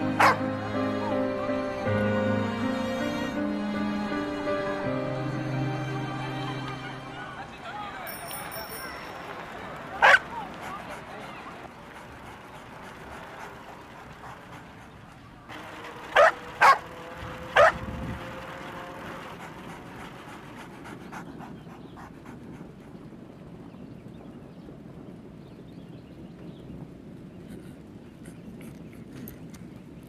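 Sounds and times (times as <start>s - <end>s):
outdoor background hush: 0.0s - 30.0s
dog barking: 0.1s - 0.5s, 10.0s - 10.4s, 16.2s - 16.9s, 17.6s - 17.8s.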